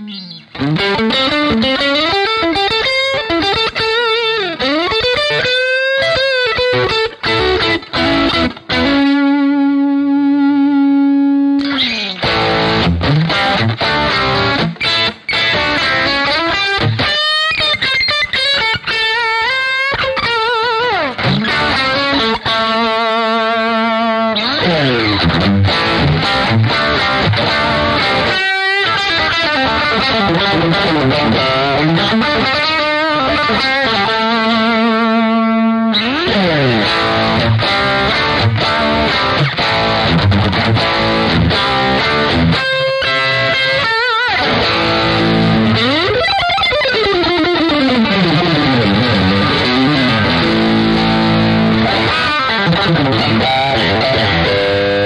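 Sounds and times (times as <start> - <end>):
distorted electric guitar lead: 0.0 - 55.0.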